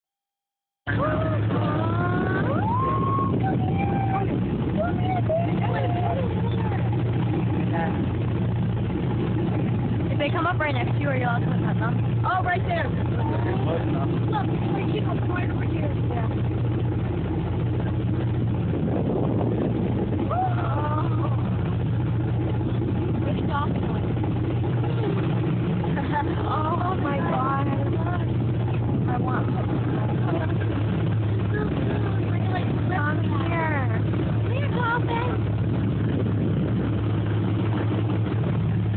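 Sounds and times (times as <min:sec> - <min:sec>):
speedboat engine running: 0:00.0 - 0:38.9
passengers talking and exclaiming: 0:00.9 - 0:08.3, 0:09.9 - 0:18.0, 0:18.9 - 0:36.6.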